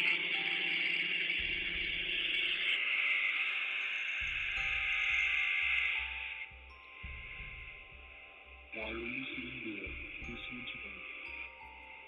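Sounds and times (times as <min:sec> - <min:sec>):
harsh electronic noise: 0:00.0 - 0:07.8
faint droning tones: 0:00.0 - 0:12.0
low pulsing: 0:00.9 - 0:11.9.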